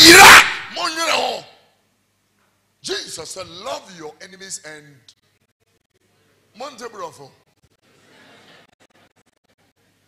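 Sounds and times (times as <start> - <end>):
man speaking: 0.0 - 1.6.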